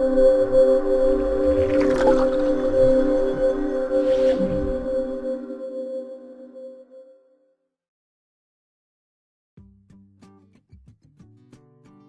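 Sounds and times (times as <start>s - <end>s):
sustained synth chord: 0.0s - 7.4s
swishing sound effect: 1.5s - 5.0s.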